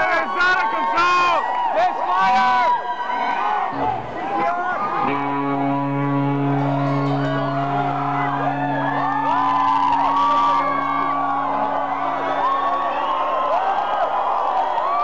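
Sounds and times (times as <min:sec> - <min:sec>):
audience whooping and cheering: 0:00.0 - 0:15.0
rock band holding a low note: 0:03.7 - 0:14.2.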